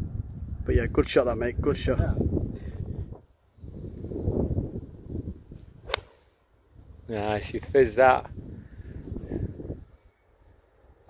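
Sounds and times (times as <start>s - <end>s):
golf club striking ball: 5.8s - 6.2s.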